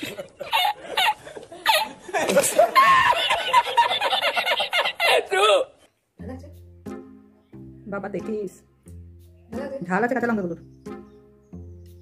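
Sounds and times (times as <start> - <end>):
man cackling laughter: 0.0 - 5.6.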